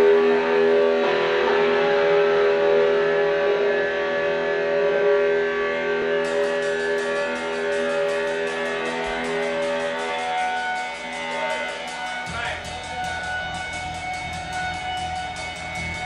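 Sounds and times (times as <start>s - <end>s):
electric guitar chords ringing: 0.0s - 16.0s
cymbal taps: 6.2s - 16.0s.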